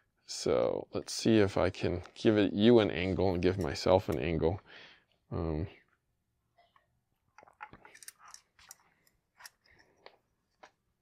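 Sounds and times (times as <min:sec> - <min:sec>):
caliper clicking and scraping: 0:07.4 - 0:10.2.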